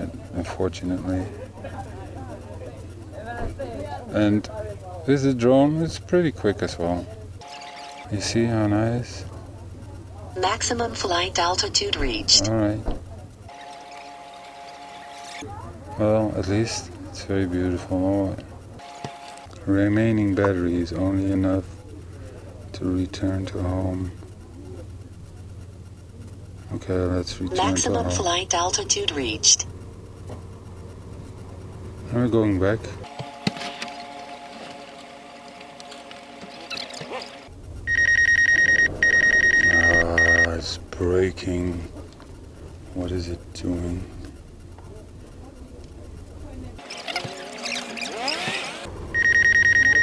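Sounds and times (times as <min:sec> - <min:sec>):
faint steady hum: 0:00.0 - 0:50.0
two-pitch electronic alert tone: 0:07.4 - 0:08.1, 0:37.9 - 0:40.6, 0:49.1 - 0:50.0
rapidly pulsed warning beep: 0:07.4 - 0:08.2, 0:37.7 - 0:40.7, 0:49.1 - 0:50.0
person speaking: 0:27.5 - 0:29.6.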